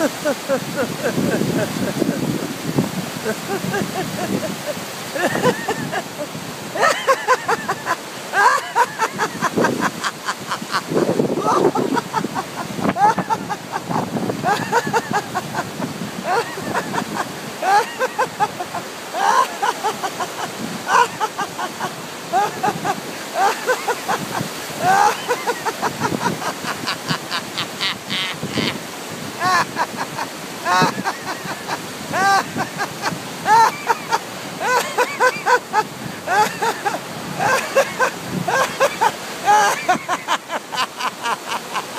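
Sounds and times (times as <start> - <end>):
man laughing loudly: 0.0 - 41.9
river water rushing: 0.0 - 41.9.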